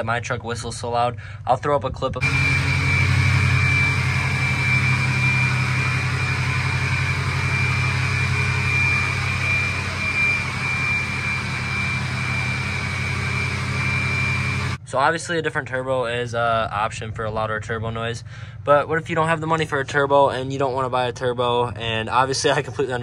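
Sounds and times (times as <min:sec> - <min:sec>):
diesel engine idling: 0:02.2 - 0:14.8
high-pitched turbo whistle: 0:02.2 - 0:14.8.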